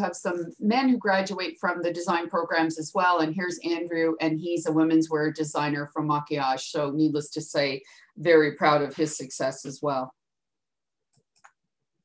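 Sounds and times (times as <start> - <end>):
person speaking: 0.0 - 10.1.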